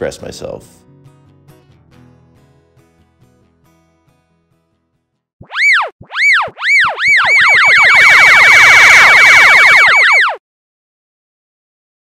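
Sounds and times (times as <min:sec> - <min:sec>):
rising and falling electronic tones: 0:05.4 - 0:10.4.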